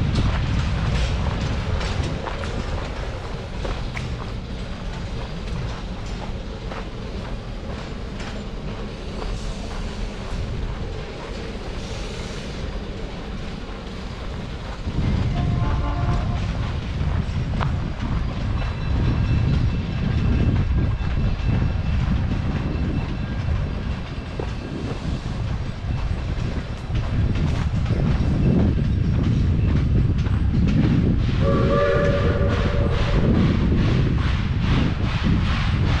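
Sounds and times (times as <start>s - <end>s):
train rumbling: 0.0s - 36.0s
train whistle: 15.3s - 16.5s, 31.4s - 33.3s.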